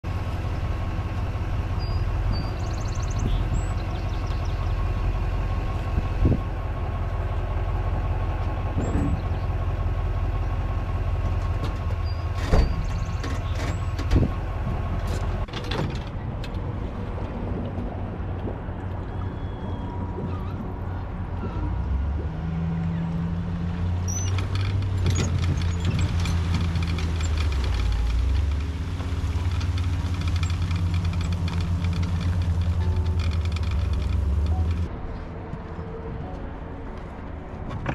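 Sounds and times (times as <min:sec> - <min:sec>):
vehicle engine idling: 0:00.0 - 0:37.9
bird chirps: 0:01.8 - 0:04.8, 0:24.1 - 0:24.4.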